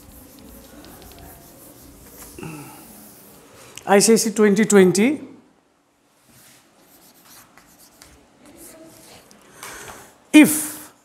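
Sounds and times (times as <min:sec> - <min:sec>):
chalk scratching on blackboard: 0:00.0 - 0:03.5, 0:06.4 - 0:09.3.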